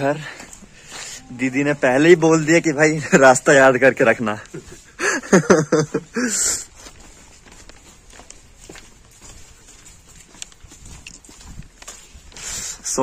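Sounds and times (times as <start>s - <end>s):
footsteps on wet concrete: 0.0s - 13.0s.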